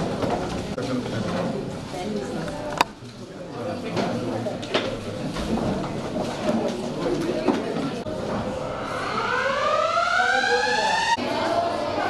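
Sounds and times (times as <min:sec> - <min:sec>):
siren-like rising tone: 0:08.1 - 0:11.3.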